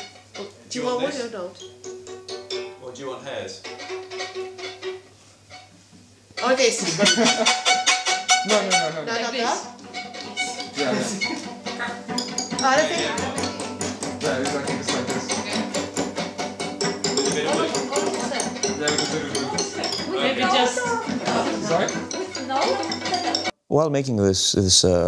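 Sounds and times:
bows tapping on strings: 3.6s - 23.5s
ringing string note: 6.4s - 23.5s.

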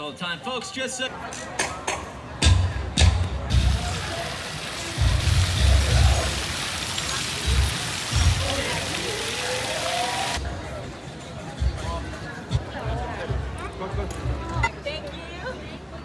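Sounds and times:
faint voices: 0.0s - 16.0s
fountain water splashing: 3.5s - 10.4s.

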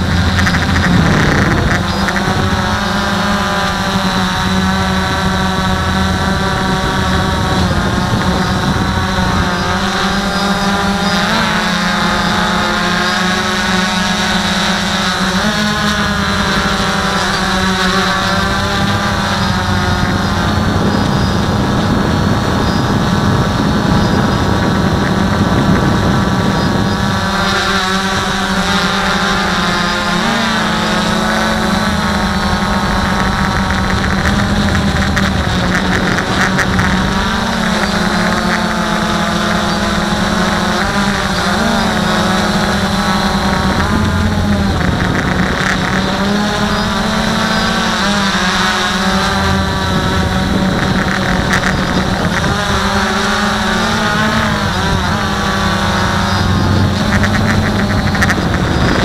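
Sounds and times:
quadcopter motors and propellers: 0.0s - 59.0s.

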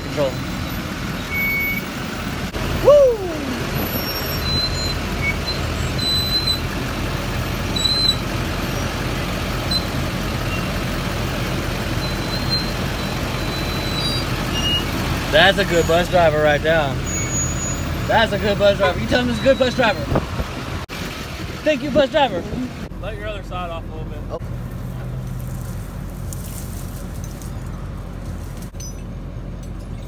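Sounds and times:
diesel engines running: 0.0s - 30.0s.

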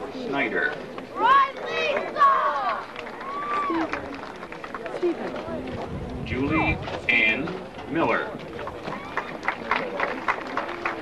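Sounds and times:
open-air background murmur: 0.0s - 11.0s.

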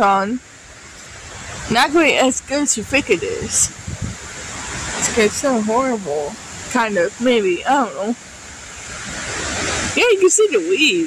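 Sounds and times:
strong wind gusting through trees: 0.0s - 11.0s.

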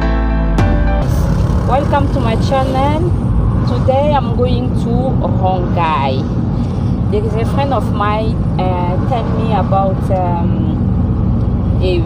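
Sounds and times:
intro music: 0.0s - 4.5s
car engine and road noise: 0.0s - 12.0s
woman talking: 1.7s - 6.3s, 7.1s - 10.8s, 11.8s - 12.0s.

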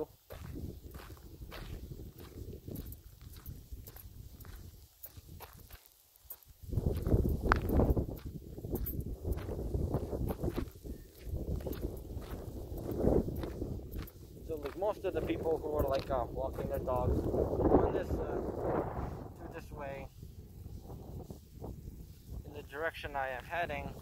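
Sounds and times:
footsteps on trail: 0.0s - 18.7s.

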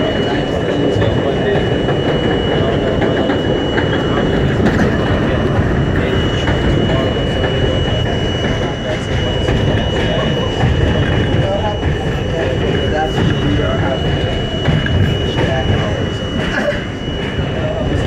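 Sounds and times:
high-pitched tone: 0.0s - 18.0s
train wheels rumbling on rails: 0.0s - 18.0s.

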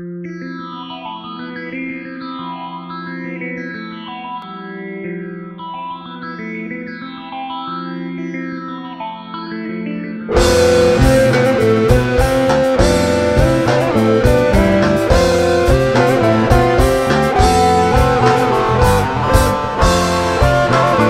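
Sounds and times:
chorus guitar sustained notes: 10.3s - 21.0s
low held note: 10.3s - 21.0s
rock band playing: 10.3s - 21.0s.

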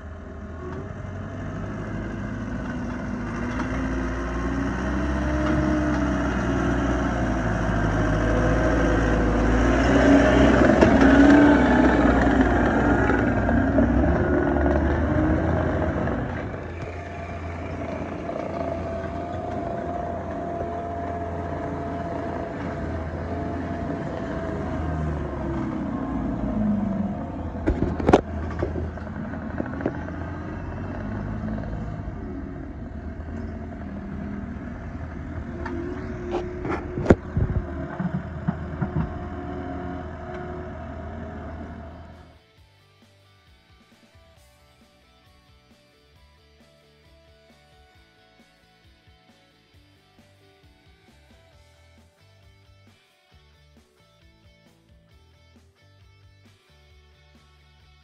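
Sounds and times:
diesel engine running under load: 0.0s - 42.4s.

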